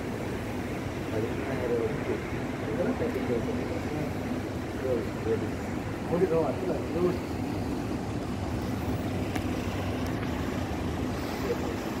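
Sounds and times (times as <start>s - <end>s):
distant city traffic hum: 0.0s - 12.0s.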